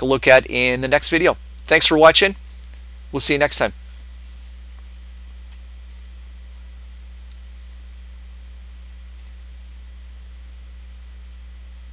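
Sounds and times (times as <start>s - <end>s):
low hum: 0.0s - 11.9s
computer mouse clicks: 9.2s - 9.4s.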